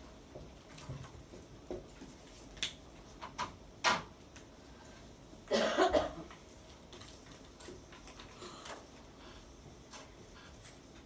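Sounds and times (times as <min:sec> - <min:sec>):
person coughing: 0:05.5 - 0:06.3.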